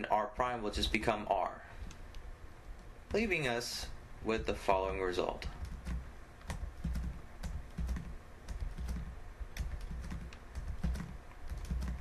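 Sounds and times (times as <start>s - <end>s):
computer keyboard clicking: 5.6s - 12.0s.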